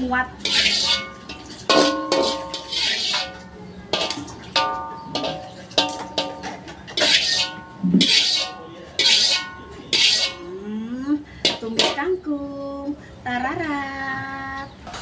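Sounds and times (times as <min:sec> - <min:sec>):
metal spatula scraping a wok: 0:00.0 - 0:10.5, 0:11.4 - 0:12.1.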